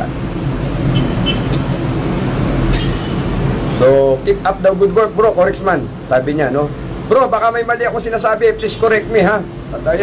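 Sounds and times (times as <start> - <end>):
mechanical hum and rumble: 0.0 - 10.0.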